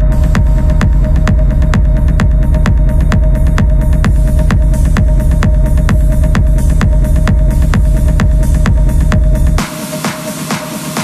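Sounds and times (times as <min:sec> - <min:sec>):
heavy bass line: 0:00.0 - 0:11.0
techno kick drum: 0:00.0 - 0:11.0.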